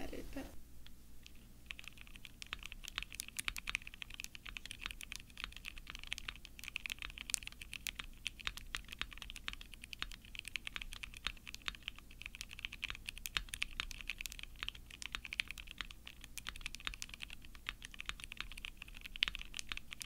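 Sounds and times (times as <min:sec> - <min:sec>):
mechanical keyboard typing: 0:01.2 - 0:20.0.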